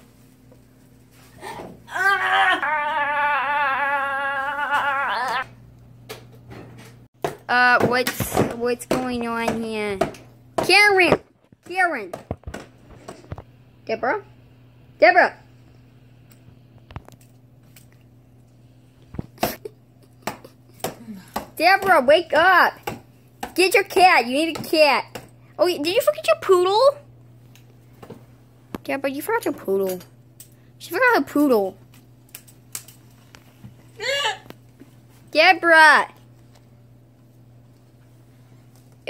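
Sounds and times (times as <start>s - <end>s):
girl laughing high-pitched: 1.9s - 5.5s, 34.0s - 34.5s.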